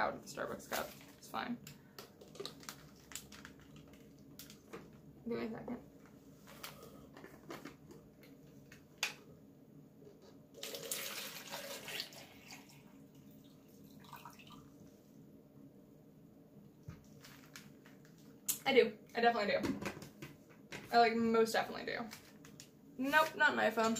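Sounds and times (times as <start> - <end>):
water pouring into plastic cup: 10.6 - 14.8.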